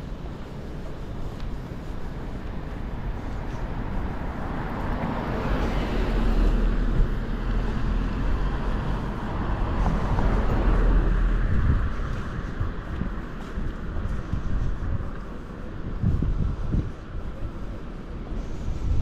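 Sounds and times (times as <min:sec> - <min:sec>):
cars passing: 0:00.0 - 0:19.0
low wind rumble on microphone: 0:00.0 - 0:19.0.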